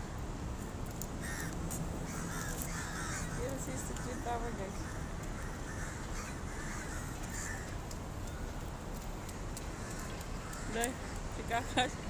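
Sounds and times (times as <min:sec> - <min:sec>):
low rumble of city traffic: 0:00.0 - 0:12.0
crows cawing: 0:01.2 - 0:07.8, 0:09.3 - 0:11.3.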